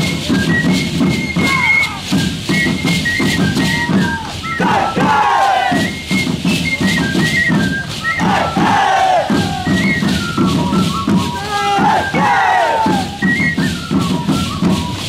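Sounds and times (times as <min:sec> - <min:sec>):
drum: 0:00.0 - 0:15.0
high flute melody: 0:00.0 - 0:15.0
dancers long falling shout: 0:11.5 - 0:13.1.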